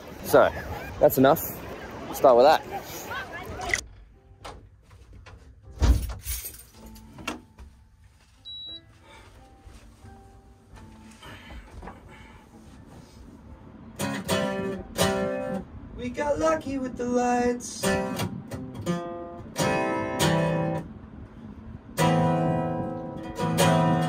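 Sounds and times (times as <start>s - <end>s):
short high beep: 8.4s - 8.8s
acoustic guitar strummed: 14.0s - 15.6s, 17.1s - 20.9s, 22.0s - 24.0s.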